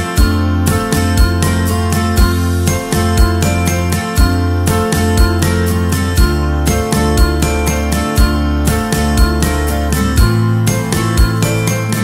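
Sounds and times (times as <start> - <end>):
upbeat instrumental music: 0.0 - 12.0.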